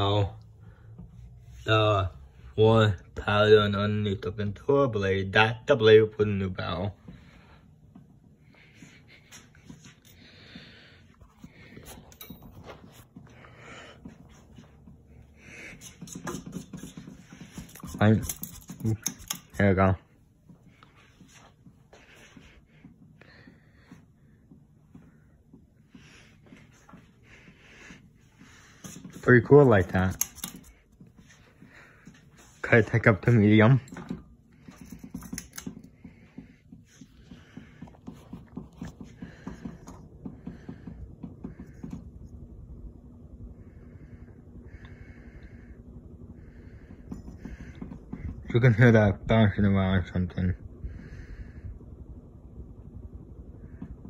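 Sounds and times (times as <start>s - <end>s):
ceiling fan humming: 0.0s - 54.0s.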